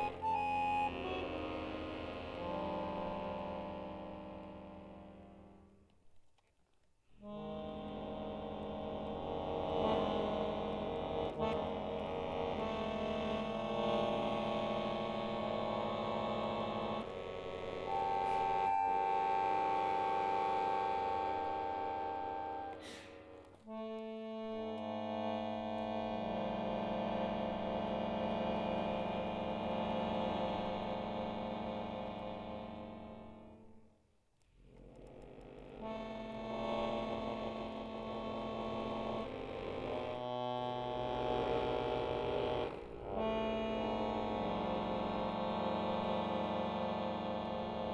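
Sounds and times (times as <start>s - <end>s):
accordion playing dissonant chords: 0.0s - 5.8s, 7.2s - 33.8s, 34.8s - 47.9s.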